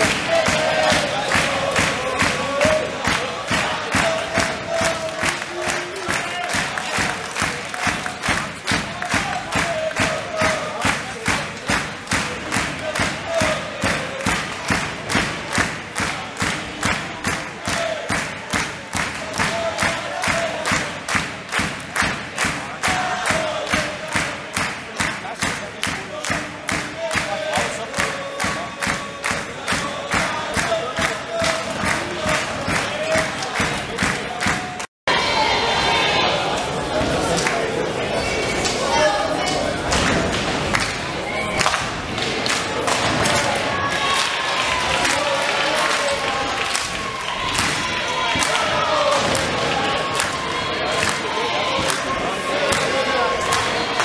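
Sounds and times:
crowd clapping in rhythm: 0.0 - 34.9, 36.5 - 54.0
voices chanting: 0.0 - 54.0.

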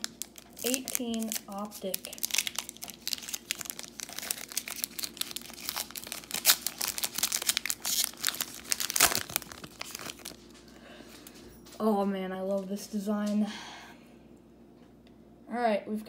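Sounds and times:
plastic wrapper crinkling: 0.0 - 11.3.

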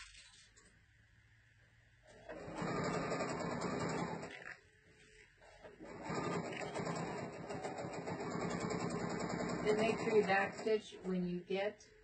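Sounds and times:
sewing machine stitching: 2.1 - 4.6, 5.4 - 11.3.

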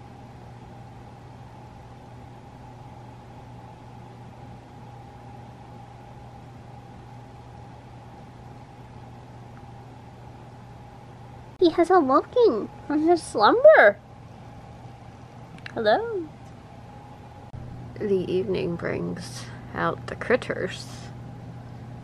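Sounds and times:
air conditioning hum: 0.0 - 22.0
faint whine: 0.0 - 22.0.

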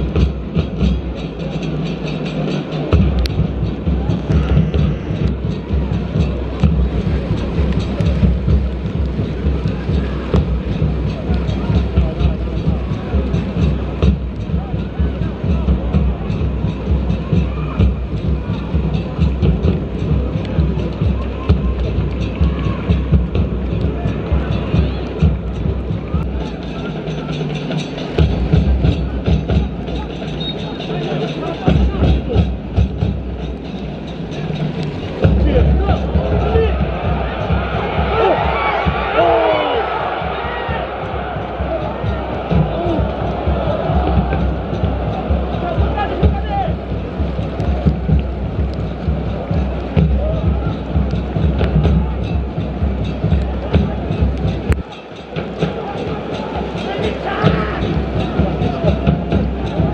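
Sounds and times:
stadium crowd din: 0.0 - 59.9.

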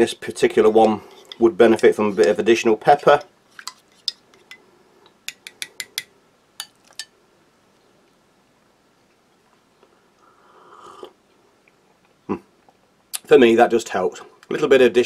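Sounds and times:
person slurping soup: 10.3 - 11.2.

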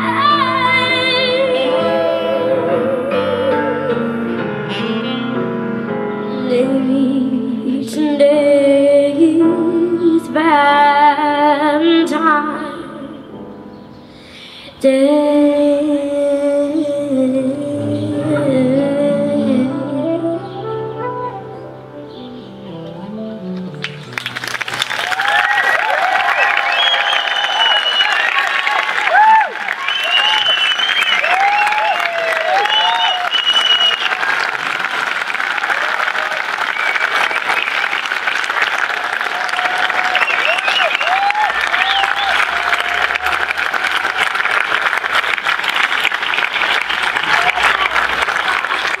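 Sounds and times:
band playing: 1.2 - 6.1, 17.6 - 25.2
audience applauding: 23.7 - 49.0
cheering voices: 24.7 - 49.0.

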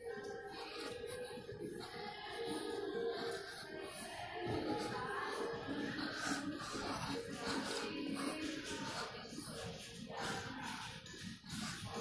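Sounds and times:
music with singing over speakers: 0.0 - 12.0.

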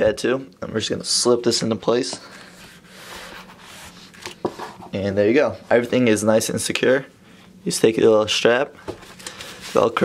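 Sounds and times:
tablet rubbing against fabric: 2.5 - 5.0.

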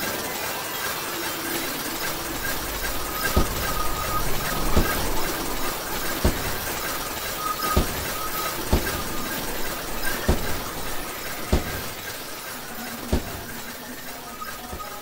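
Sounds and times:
ice crackling hiss: 0.0 - 15.0.

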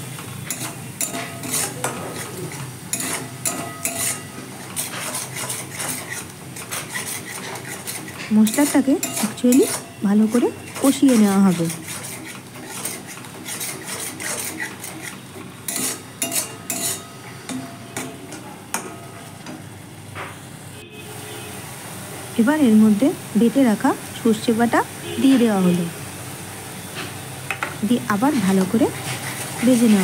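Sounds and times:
metal spatula scraping wok: 0.0 - 19.6, 28.0 - 30.0
faint frying sizzle: 0.0 - 30.0.

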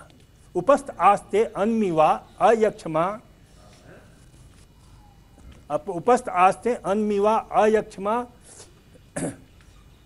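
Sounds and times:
throat clearing: 9.1 - 9.5.

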